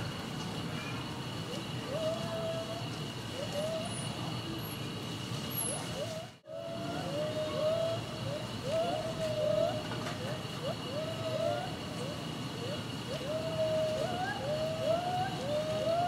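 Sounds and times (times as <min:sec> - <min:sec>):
spider monkeys calling: 0:00.8 - 0:04.8, 0:05.5 - 0:16.0.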